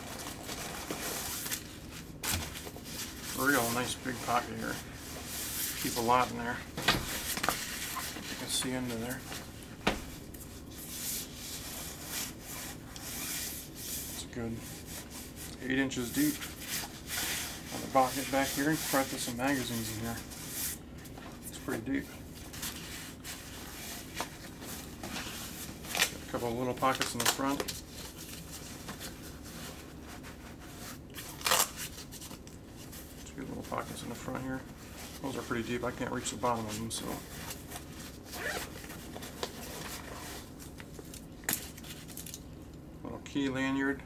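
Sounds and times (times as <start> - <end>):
fabric backpack rustling: 37.7 - 40.5.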